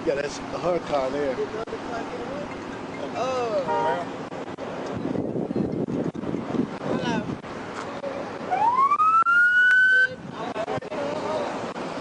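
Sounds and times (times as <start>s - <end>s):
wind on microphone: 4.3s - 7.8s
emergency vehicle siren: 8.5s - 10.2s.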